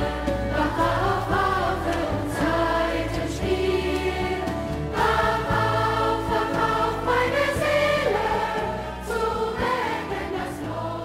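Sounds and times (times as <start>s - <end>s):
children's choir singing: 0.0s - 11.0s
instrumental accompaniment with bass: 0.0s - 11.0s.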